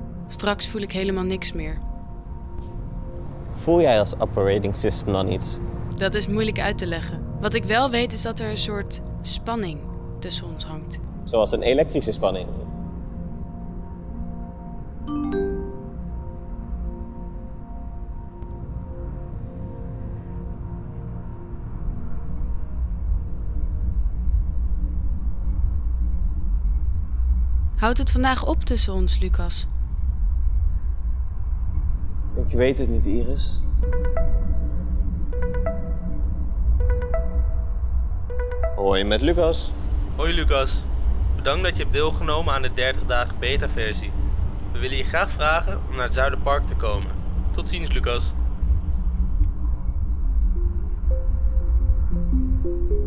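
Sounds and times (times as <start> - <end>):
soft electronic music: 0.0 - 25.3, 32.4 - 41.6, 48.7 - 53.0
city traffic rumble: 2.7 - 7.0, 39.4 - 52.6
faint sustained tones: 48.4 - 53.0.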